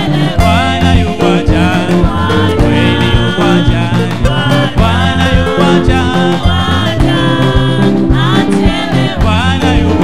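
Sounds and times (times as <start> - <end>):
instrumental backing with steady beat: 0.0 - 10.0
man singing into a microphone: 0.0 - 10.0.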